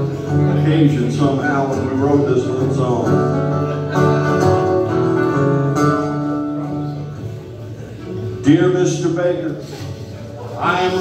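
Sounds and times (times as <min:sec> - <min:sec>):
acoustic guitars strumming chords: 0:00.0 - 0:11.0.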